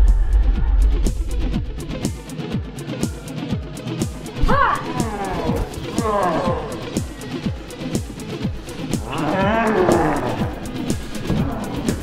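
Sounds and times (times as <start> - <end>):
dance music with thumping beat: 3.5 - 12.0
wavering monster roar: 4.9 - 7.0, 9.0 - 10.8.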